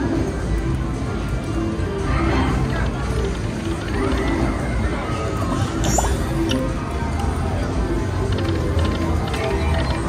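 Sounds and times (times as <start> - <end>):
casino background: 2.5 - 4.7, 5.7 - 10.0
slot machine reels clicking: 2.6 - 4.8, 8.0 - 10.0.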